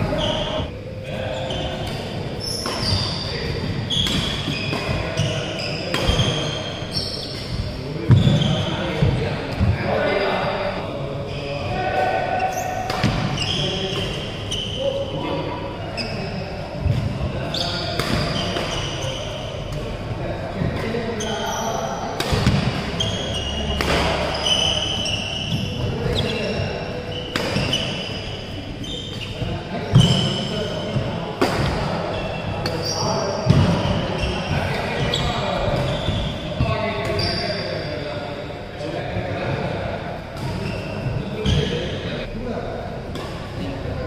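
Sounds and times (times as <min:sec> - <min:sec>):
shoes squeaking on court floor: 0:00.0 - 0:10.6, 0:12.4 - 0:15.1, 0:15.9 - 0:19.9, 0:20.6 - 0:38.1, 0:40.4 - 0:42.3
racket hitting shuttlecock: 0:12.8 - 0:14.2, 0:22.2 - 0:22.9, 0:23.7 - 0:25.0, 0:27.3 - 0:28.0.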